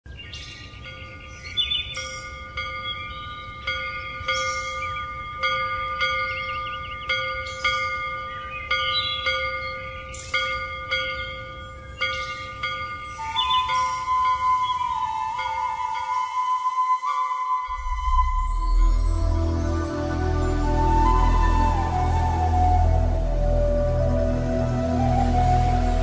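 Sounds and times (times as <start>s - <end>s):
bells chiming: 0.7s - 16.6s, 17.6s - 24.3s.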